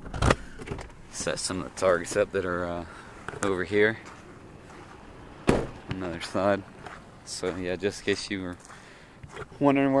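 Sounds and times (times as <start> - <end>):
sharp knock: 5.5 - 5.8.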